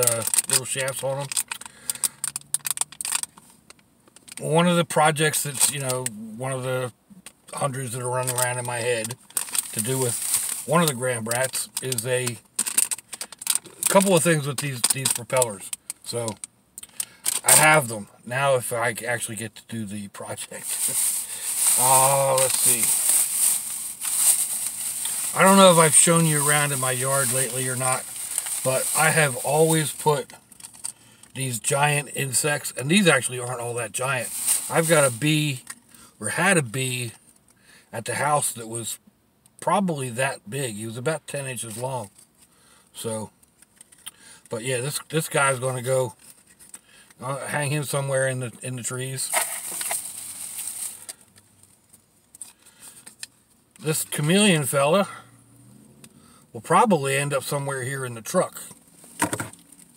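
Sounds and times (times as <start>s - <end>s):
rain on car roof and windows: 8.2s - 12.9s, 20.6s - 30.2s.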